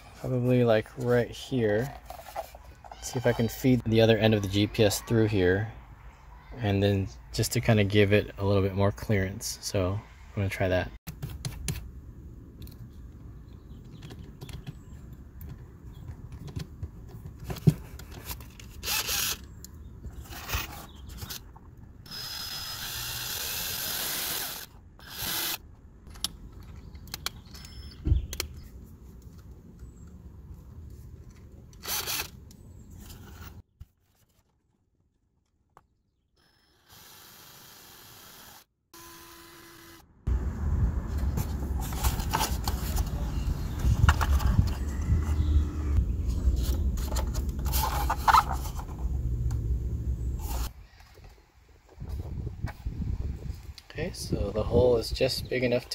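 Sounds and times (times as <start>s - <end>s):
cordless drill running: 22.1s - 25.6s, 36.4s - 40.0s.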